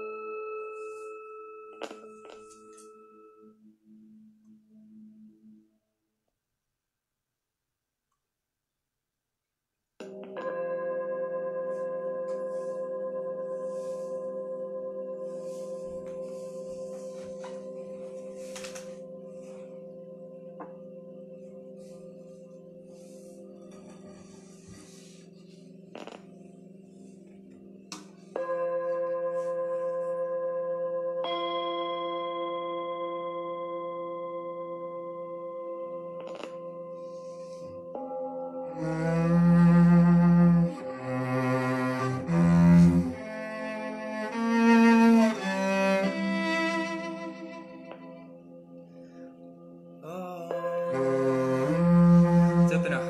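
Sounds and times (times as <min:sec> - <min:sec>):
bell-like ringing tones: 0:28.4 - 0:36.2.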